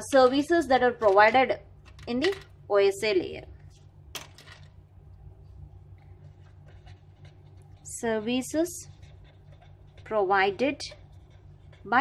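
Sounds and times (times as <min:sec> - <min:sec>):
marker scratching on paper: 0:06.4 - 0:12.0.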